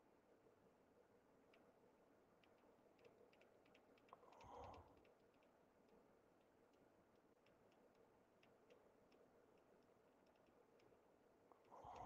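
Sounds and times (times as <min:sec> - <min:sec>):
faint light clicks: 0:01.4 - 0:01.8, 0:02.4 - 0:12.0.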